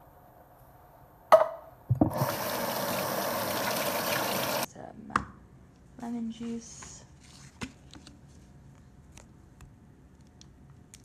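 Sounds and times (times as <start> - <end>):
faucet water running: 2.0 - 4.7.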